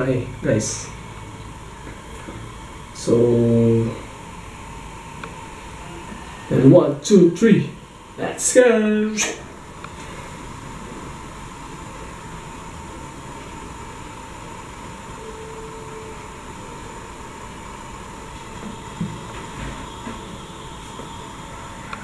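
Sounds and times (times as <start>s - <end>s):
room noise hiss: 0.0s - 22.0s
faint short tone: 15.2s - 17.0s.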